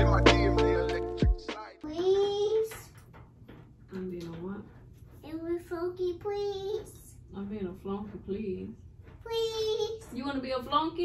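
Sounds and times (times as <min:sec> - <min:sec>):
hip-hop music: 0:00.0 - 0:02.0
toddler babbling: 0:01.8 - 0:02.8, 0:05.3 - 0:07.0, 0:09.3 - 0:10.1.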